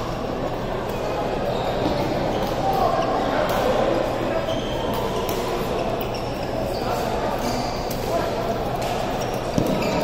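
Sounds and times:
background chatter: 0.0 - 10.0
shoes squeaking on court floor: 0.8 - 10.0.

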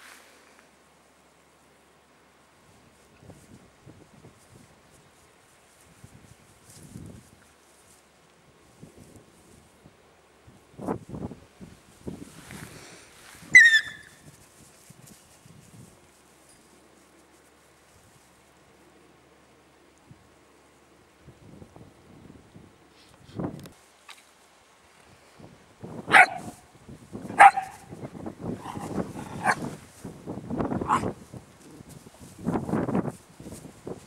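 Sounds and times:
dogs rustling in grass: 2.5 - 19.7, 25.3 - 34.0
puppy yelping: 13.6 - 14.1, 27.4 - 27.8
dog barking: 26.1 - 26.6, 27.3 - 27.9, 30.8 - 31.1.

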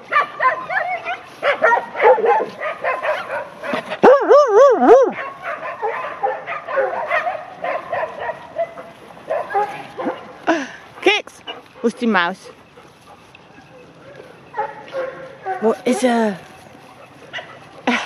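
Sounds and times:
dog loud wavering call: 4.0 - 5.2.

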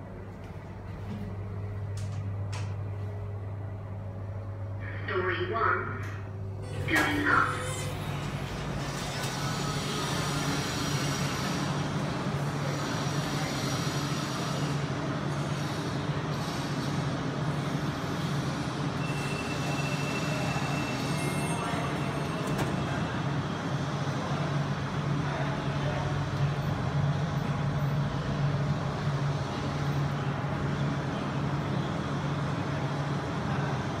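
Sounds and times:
low mechanical hum: 0.0 - 20.7.

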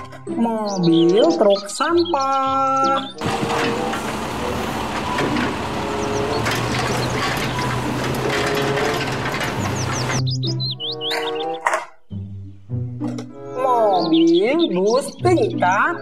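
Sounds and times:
birds chirping: 0.0 - 11.7, 13.4 - 16.0
mechanical arm lifting bin: 3.2 - 10.2
diesel engine running: 3.2 - 10.3.

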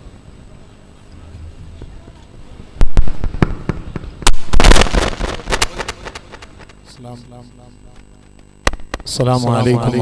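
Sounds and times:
loud sharp cracks: 2.8 - 6.8, 8.3 - 9.1.

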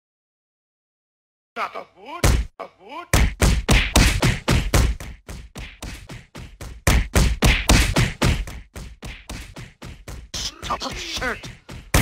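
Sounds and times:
fast run of short thumps: 3.2 - 10.4.

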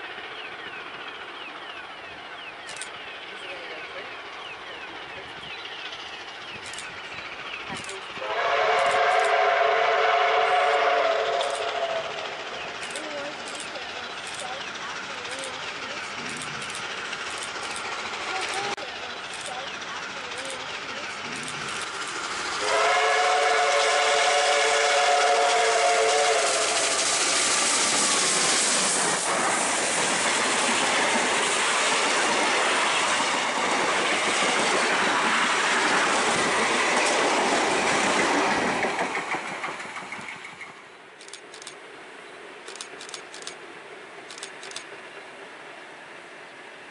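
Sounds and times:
steam locomotive exhaust: 0.0 - 41.8
steam locomotive chime whistle: 7.8 - 13.0, 22.6 - 27.4
carriages rolling: 11.4 - 22.6.

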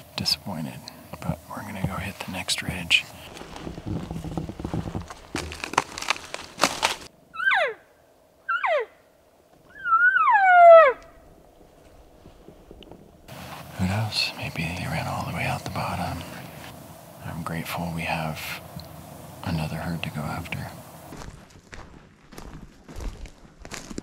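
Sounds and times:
footsteps through dry brush: 3.2 - 7.1, 19.6 - 24.0
elk calls: 7.3 - 7.8, 8.4 - 9.0, 9.6 - 11.4.

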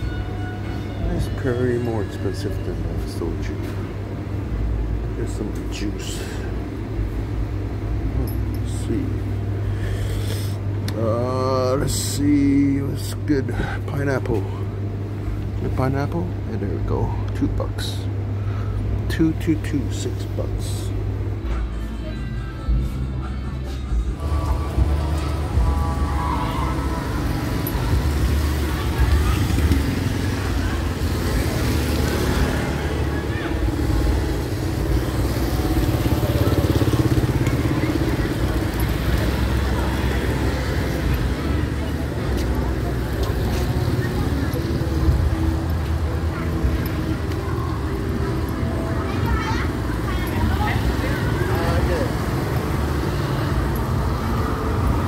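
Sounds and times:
faint voices: 0.0 - 55.0
low traffic rumble: 0.0 - 55.0
car engines passing: 23.9 - 55.0
motorbike engine passing: 24.2 - 55.0.

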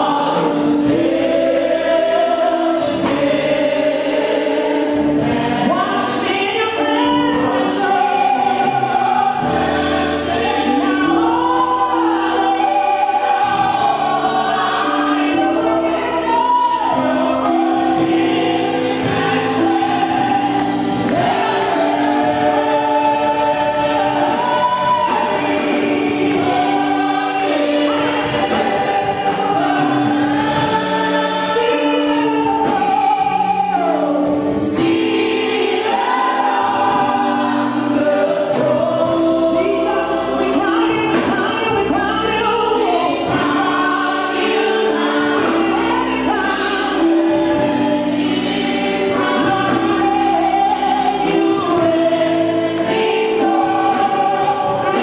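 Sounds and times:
sustained keyboard chords: 0.0 - 55.0
women singing gospel together: 0.0 - 55.0.

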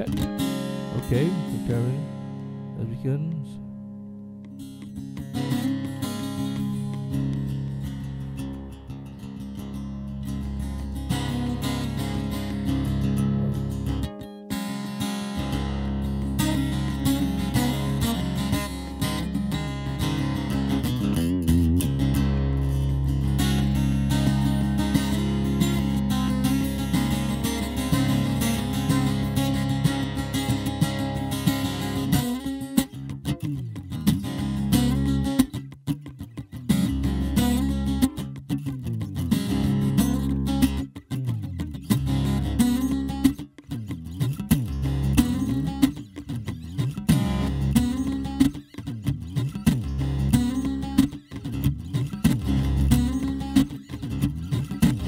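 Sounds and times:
low sustained guitar notes: 0.0 - 55.0
nylon-string guitar picking: 0.0 - 55.0.

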